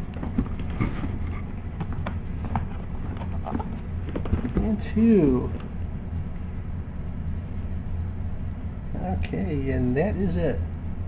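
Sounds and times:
cardboard boxes knocking and scraping: 0:00.0 - 0:05.6
steady low hum: 0:00.0 - 0:11.0.

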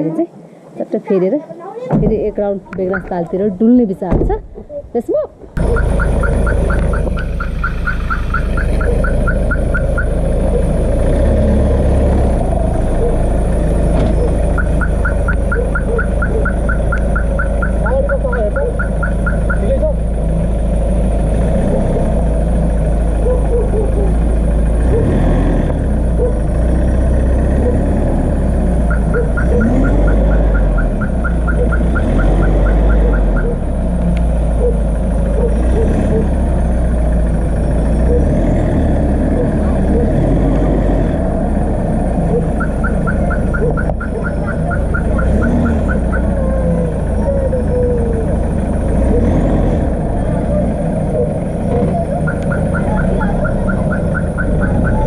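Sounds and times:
vehicle engine rumbling: 0:00.0 - 0:55.0
rapid high-pitched pulsing: 0:05.6 - 0:10.6.

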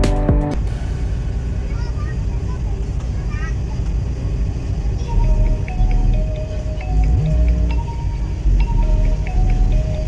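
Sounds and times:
ferry engine rumble: 0:00.0 - 0:10.0
faint voices: 0:01.6 - 0:05.7.

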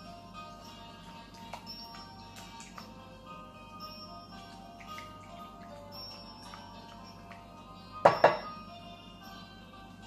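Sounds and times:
background music: 0:00.0 - 0:10.0
spatula knocking glass bowl: 0:08.0 - 0:08.5.

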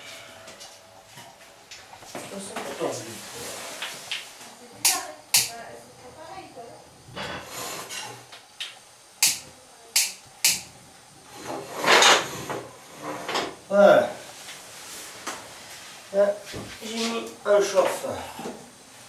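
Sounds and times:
gas hissing: 0:00.0 - 0:19.0
gas burner igniter clicks: 0:04.8 - 0:05.6, 0:08.3 - 0:10.7.

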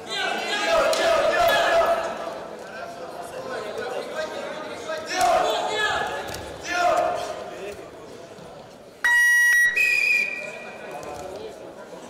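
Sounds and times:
referee's whistle: 0:09.0 - 0:10.7.

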